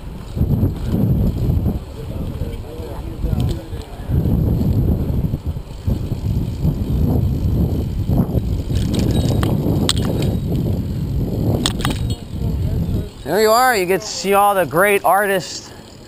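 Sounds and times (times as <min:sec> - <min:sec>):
bike clicks and rattles: 0:00.0 - 0:13.4
wind over microphone: 0:00.0 - 0:14.7
bicycle tyre rumble: 0:00.0 - 0:16.0.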